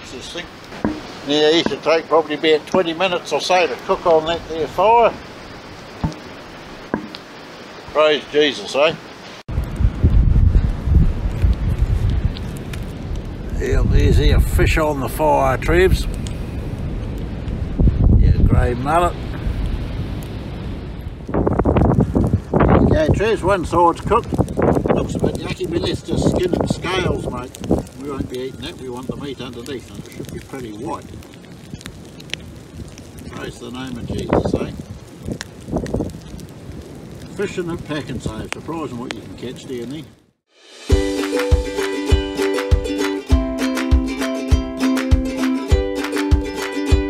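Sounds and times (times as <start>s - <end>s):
campfire crackling and popping: 0.0s - 47.0s
wind rumble on microphone: 9.5s - 40.2s.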